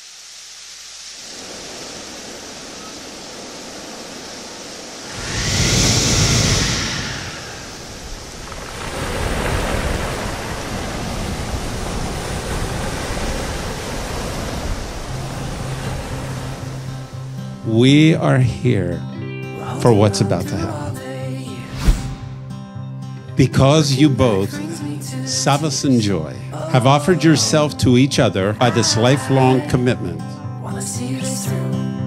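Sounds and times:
sea waves washing ashore: 0.0 - 18.7, 23.6 - 31.6.

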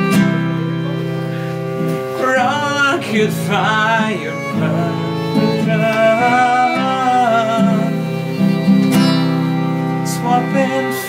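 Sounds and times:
acoustic guitar chords: 0.0 - 11.0
violin melody with vibrato: 0.0 - 11.0.

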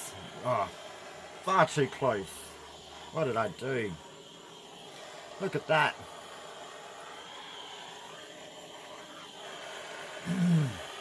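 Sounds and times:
gas blowtorch hissing: 0.0 - 11.0
person clearing throat: 10.2 - 10.8.

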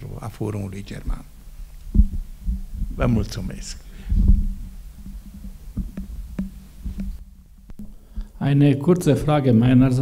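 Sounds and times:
microphone handling thumps: 1.0 - 8.4.

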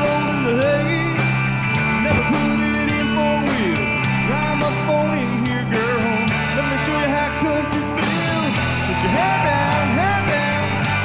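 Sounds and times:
country-rock band playing: 0.0 - 11.0
pitch-bending guitar lead line: 0.0 - 11.0.

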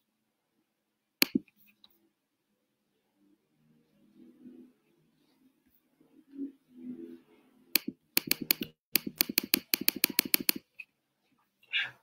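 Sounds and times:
sharp clicks: 1.2 - 1.5, 7.8 - 10.6.

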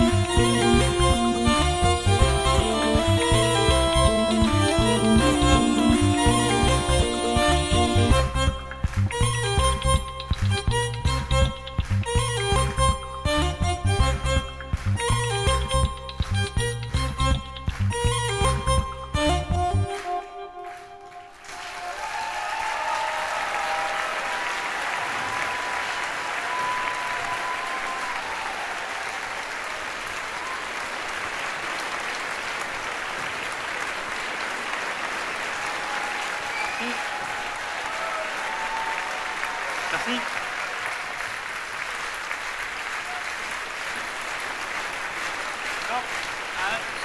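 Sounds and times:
audience applauding and cheering: 0.0 - 13.0, 14.4 - 16.4, 17.6 - 18.8, 19.7 - 47.0
music: 0.0 - 21.5.

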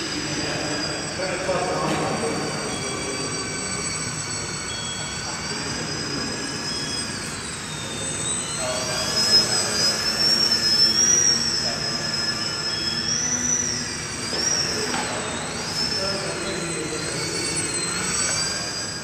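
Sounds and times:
model plane motor whine: 0.0 - 19.0.

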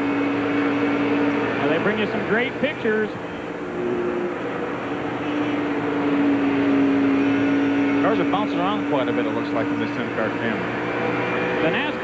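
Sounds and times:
race car engine high note: 0.0 - 12.0.

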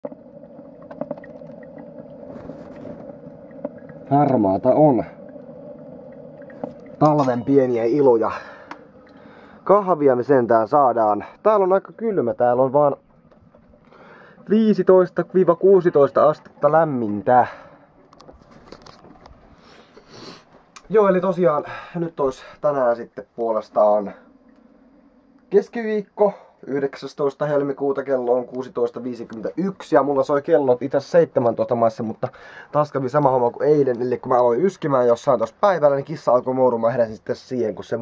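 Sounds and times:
low hum: 0.0 - 19.9, 20.6 - 30.4
camera handling rustling: 18.1 - 19.4.

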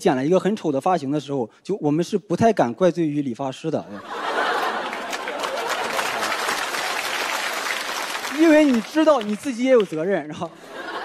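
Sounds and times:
audience applauding: 4.4 - 10.3.

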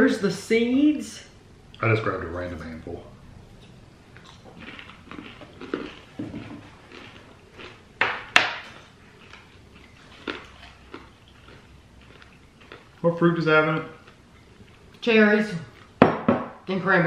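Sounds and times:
chewing crunchy cereal: 4.1 - 16.0.

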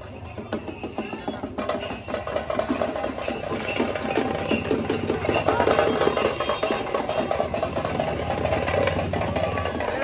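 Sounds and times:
vehicle engines idling: 0.0 - 10.0.

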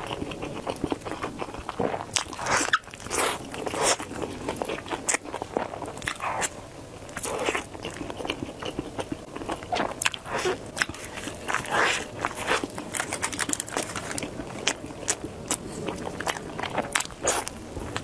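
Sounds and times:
crunchy chewing: 0.0 - 18.0.

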